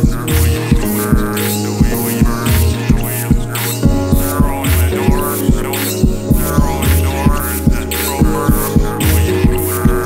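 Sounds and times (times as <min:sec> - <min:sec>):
buzzing low bass tone: 0:00.0 - 0:10.0
rhythmic short thuds: 0:00.0 - 0:10.0.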